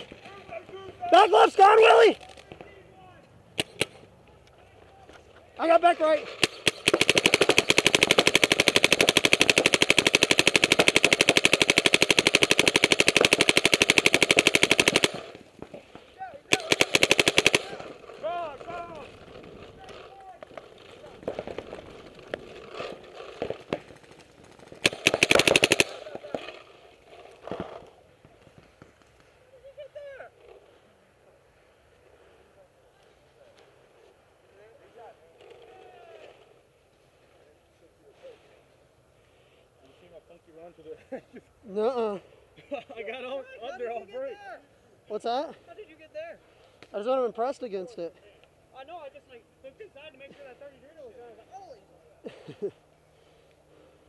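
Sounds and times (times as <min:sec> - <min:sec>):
paintball marker firing: 0:03.6 - 0:04.1, 0:06.4 - 0:15.4, 0:20.4 - 0:26.6.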